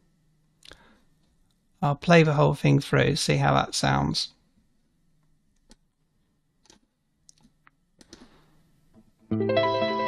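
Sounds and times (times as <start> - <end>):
faint computer mouse clicks: 6.6 - 8.4.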